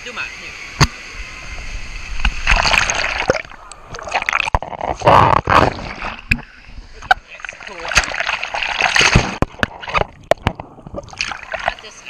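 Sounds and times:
water splashing and sloshing: 0.8 - 12.0.

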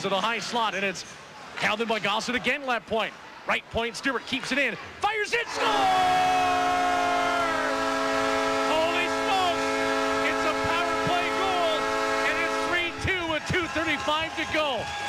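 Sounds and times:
excited voices: 5.0 - 7.7
goal horn blast: 5.5 - 13.4.

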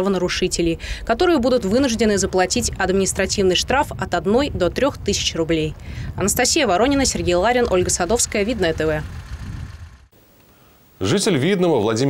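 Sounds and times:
traffic rumble: 0.0 - 10.6.

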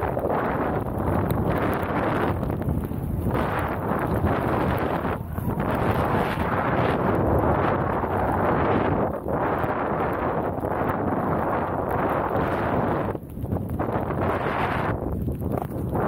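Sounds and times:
snowboard riding through powder: 0.0 - 16.0
wind rushing over microphone: 0.0 - 16.0.

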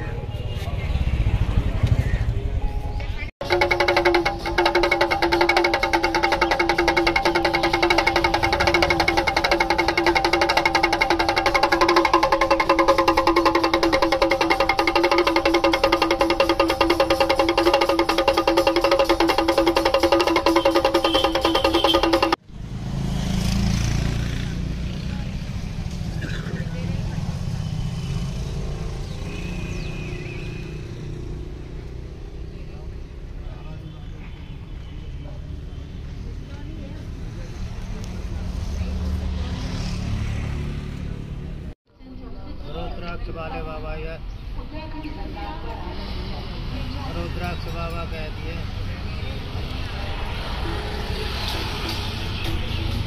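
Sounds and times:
fast rhythmic music: 3.4 - 22.4.

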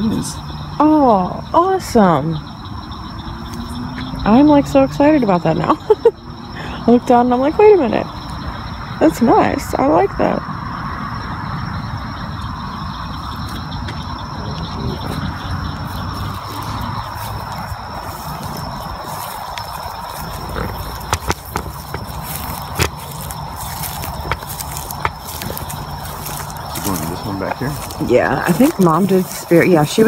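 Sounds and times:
insects calling at night: 0.0 - 30.0
footsteps on grass: 13.2 - 30.0.

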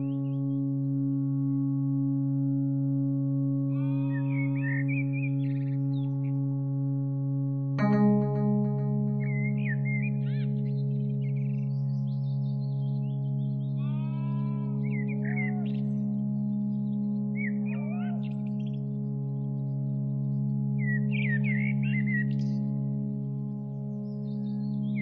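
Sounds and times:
low ambient drone: 0.0 - 25.0.

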